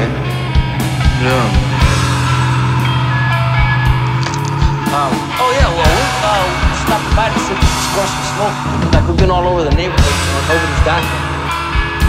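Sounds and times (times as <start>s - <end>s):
rock band music: 0.0s - 12.0s.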